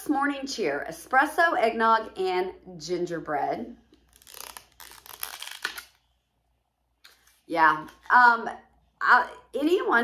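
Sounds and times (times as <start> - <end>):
plastic packaging crinkling: 4.0 - 6.0.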